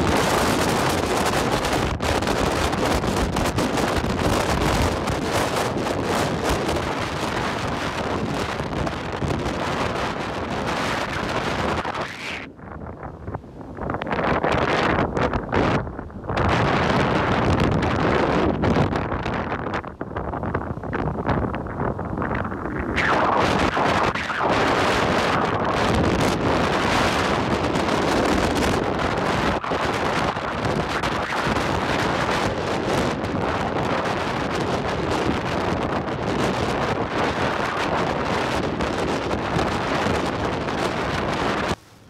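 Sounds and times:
breaking surf: 0.0 - 12.5, 13.8 - 42.0
gusty wind buffeting microphone: 0.0 - 42.0.

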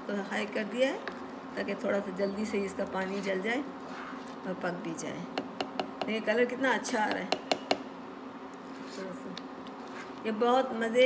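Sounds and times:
spoon stirring thick food in pan: 5.3 - 6.3.

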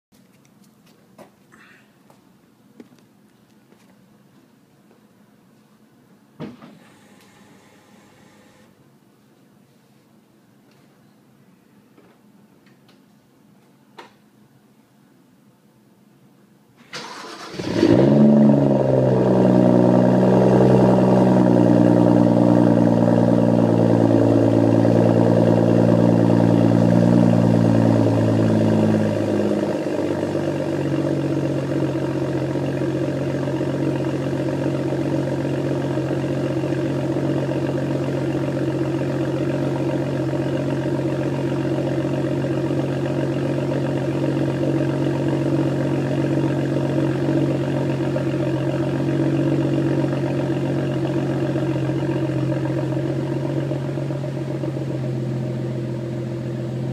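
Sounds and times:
car engine starting and idling: 16.8 - 56.9.

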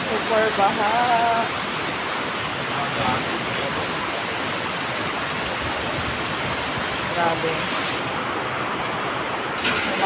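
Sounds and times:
heavy rain: 0.0 - 10.0.

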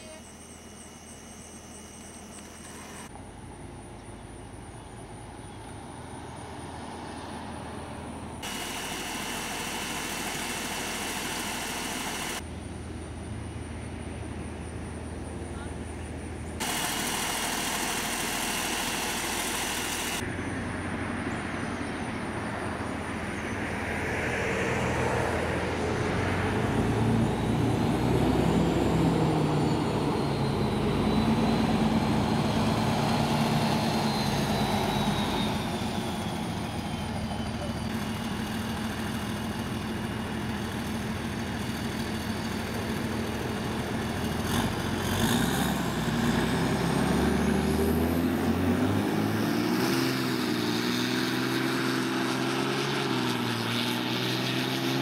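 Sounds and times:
faint high whine: 0.0 - 20.7
armored car engine running: 8.3 - 12.5, 16.4 - 20.4, 26.0 - 55.0.

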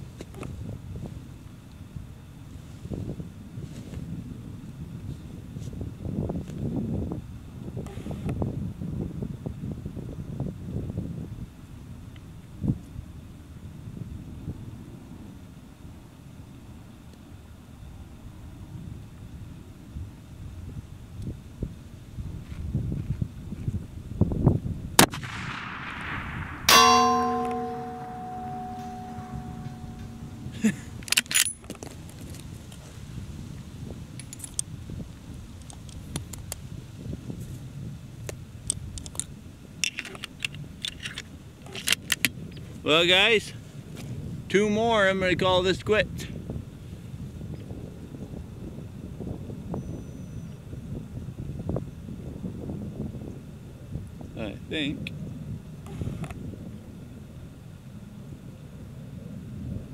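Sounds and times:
rifle shot: 25.0 - 29.2
metallic ringing: 26.6 - 31.6
rifle handling clicks: 31.0 - 32.0, 38.7 - 42.6.

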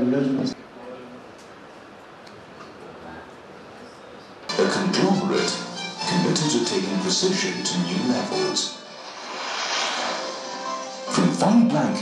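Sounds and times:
soft background music: 4.5 - 12.0
whoosh sound effect: 8.9 - 11.2.

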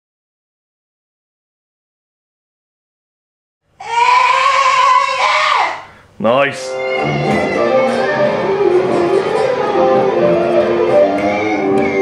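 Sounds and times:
harmonica long note: 5.8 - 12.0.

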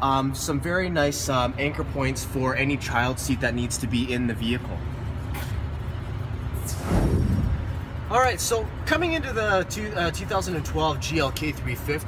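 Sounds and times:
low rumble: 6.4 - 8.2
whoosh sweeping down: 6.6 - 7.8.

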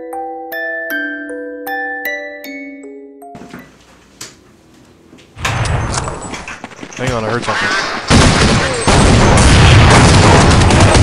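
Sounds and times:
music box tune: 0.0 - 3.4
video game gunfire effects: 7.4 - 11.0.

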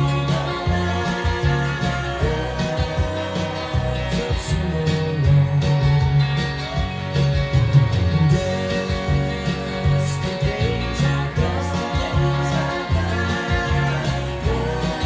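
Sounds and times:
country-rock band music: 0.0 - 15.0
electric guitar picking: 0.0 - 15.0.

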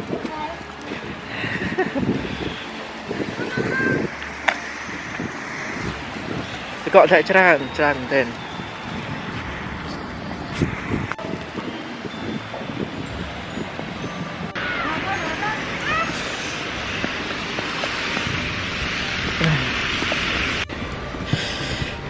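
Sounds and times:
traffic: 0.0 - 22.0
wind: 0.0 - 22.0.

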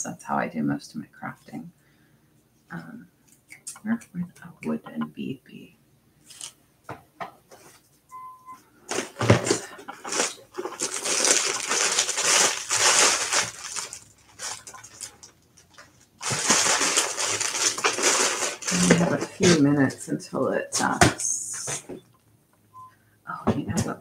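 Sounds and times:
beads rattling in plastic box: 8.9 - 19.6
plastic bags crinkling: 8.9 - 20.0.

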